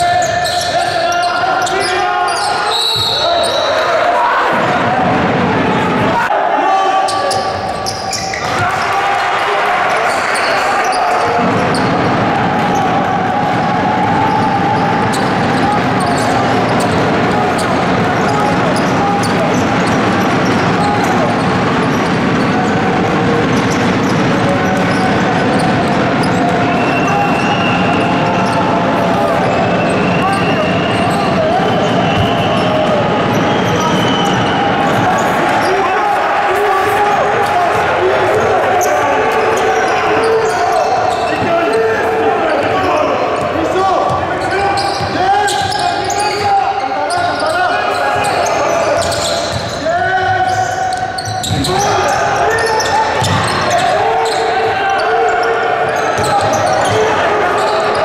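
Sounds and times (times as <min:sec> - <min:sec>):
echoing indistinct voices: 0:00.0 - 0:58.0.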